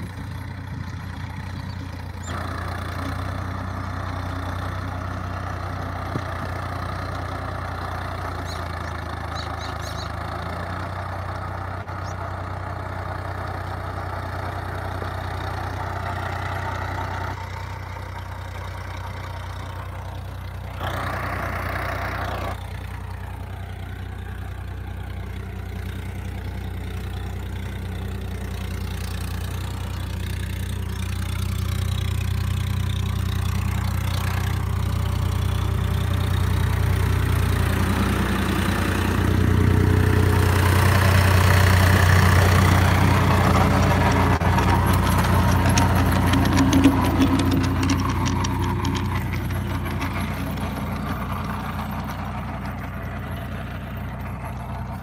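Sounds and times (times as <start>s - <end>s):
tractor diesel engine under load: 0.0s - 55.0s.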